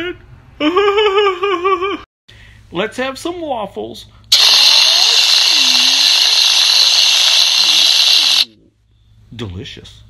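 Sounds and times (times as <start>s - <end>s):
aerosol can spray hiss: 4.3s - 8.5s.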